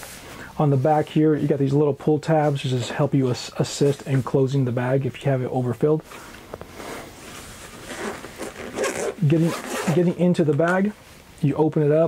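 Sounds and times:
light fabric rustle: 6.0 - 11.5.

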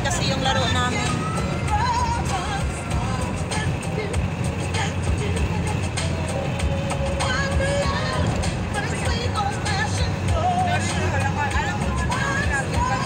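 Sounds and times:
car engine and tyres rumbling: 0.0 - 13.0
music playing: 0.0 - 13.0.

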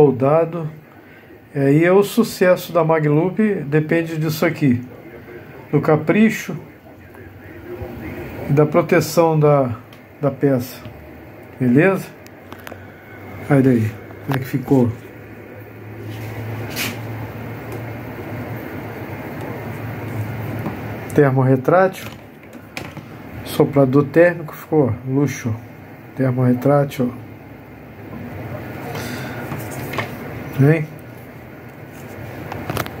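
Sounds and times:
heat gun fan blowing with hum: 0.0 - 33.0
low steady background noise: 0.0 - 33.0.

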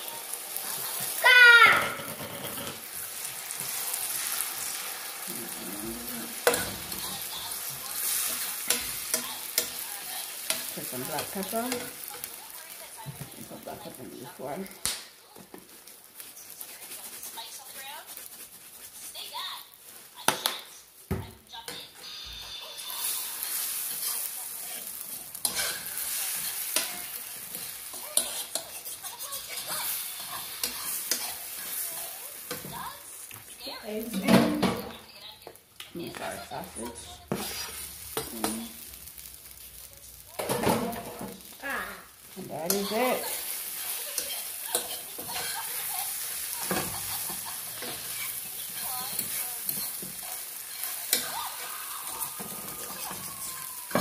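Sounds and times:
eggs sizzling in frying pan: 0.0 - 54.0
fork scraping pan: 2.0 - 4.8, 5.5 - 12.4, 16.2 - 19.3, 21.7 - 32.8, 37.3 - 38.6, 42.6 - 54.0.

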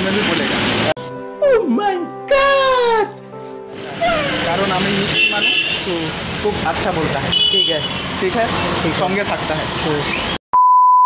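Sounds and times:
street traffic: 0.0 - 1.4, 2.4 - 10.4
man talking: 3.9 - 10.2
vehicle horn toots: 4.0 - 5.9, 7.3 - 8.1.

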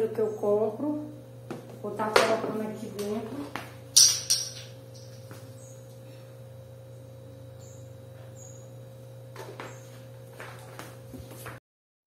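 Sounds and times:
steady low hum: 0.0 - 11.6.

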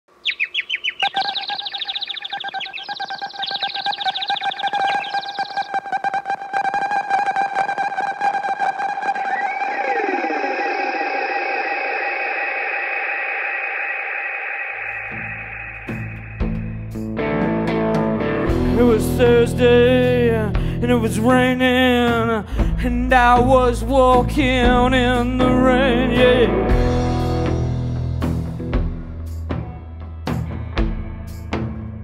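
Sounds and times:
rapid chirping blips: 0.1 - 17.0
steady high electronic tone: 0.2 - 6.6, 8.7 - 17.1
rising and falling electronic glides: 0.4 - 16.9.

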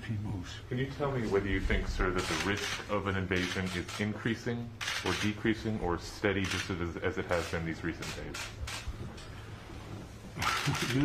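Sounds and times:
man talking: 0.0 - 8.5, 10.4 - 11.0.

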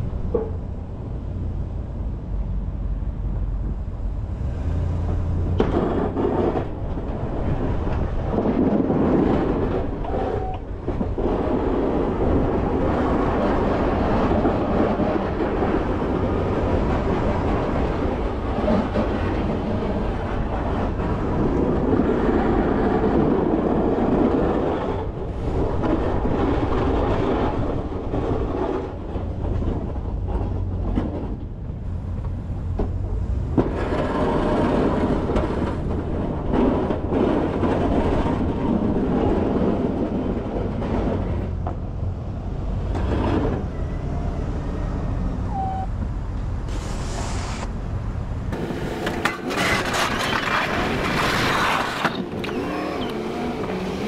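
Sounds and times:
truck engine rumbling: 0.0 - 54.0
plow blade scraping snow: 4.3 - 29.7, 33.2 - 41.5, 42.7 - 45.8, 48.5 - 54.0.

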